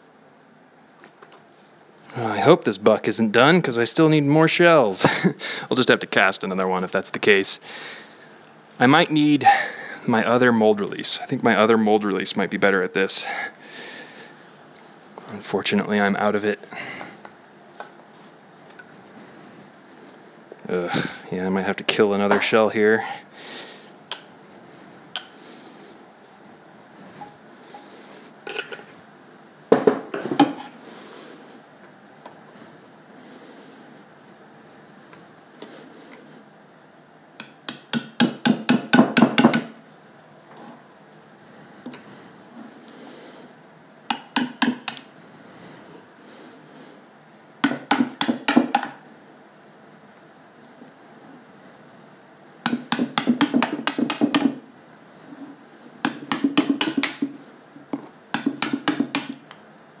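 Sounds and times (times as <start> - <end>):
hammer tapping screwdriver: 44.1 - 45.1, 52.7 - 54.5, 56.0 - 57.4, 58.4 - 59.5.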